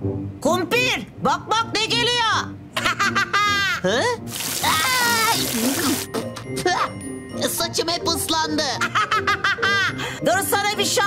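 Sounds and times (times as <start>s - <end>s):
cartoon water splash: 4.3s - 6.1s
cartoon voices: 4.6s - 6.1s
high cartoon voice crying out: 4.6s - 6.1s.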